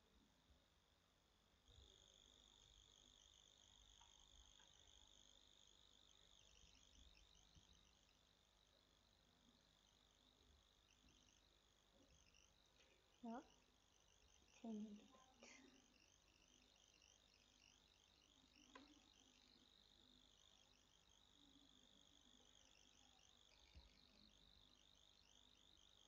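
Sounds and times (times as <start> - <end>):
insect trilling: 1.6 - 26.0
faint clicks: 18.5 - 19.5.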